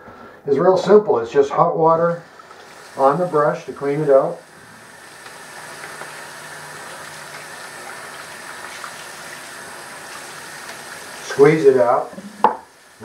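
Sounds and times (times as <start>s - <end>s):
tap water running into sink: 2.4s - 13.0s.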